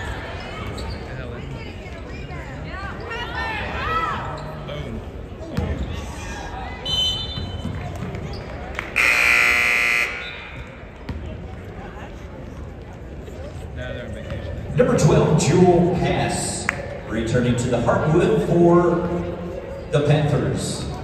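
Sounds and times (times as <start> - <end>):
sneakers squeaking on hardwood: 0.6 - 1.2
referee's whistle: 6.8 - 7.6, 9.0 - 10.6
scoreboard horn: 9.0 - 10.6.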